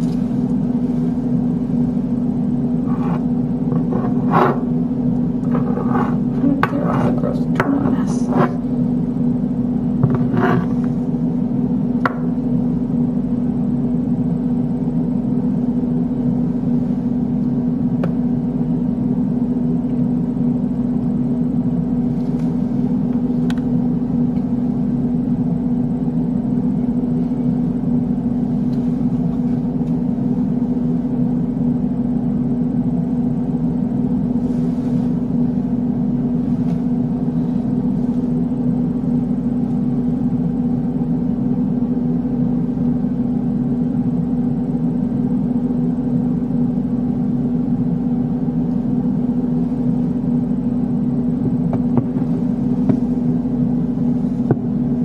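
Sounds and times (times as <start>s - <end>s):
low mechanical hum: 0.0s - 55.0s.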